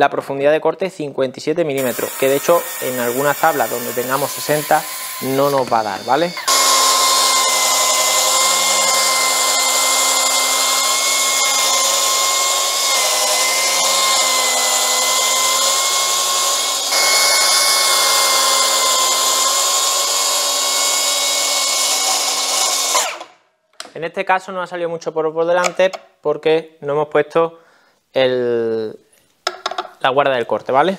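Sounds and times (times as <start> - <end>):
plunge saw cutting wood: 1.8 - 23.3.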